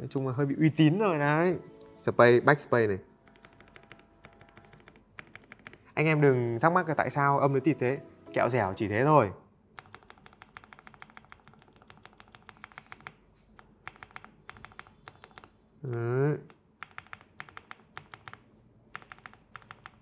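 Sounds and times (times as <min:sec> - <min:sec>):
mechanical keyboard typing: 0:03.2 - 0:06.3, 0:09.8 - 0:20.0.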